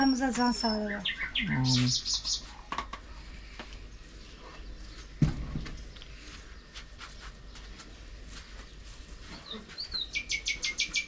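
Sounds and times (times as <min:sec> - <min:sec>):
small bird whistling and chirping: 0:09.4 - 0:11.0.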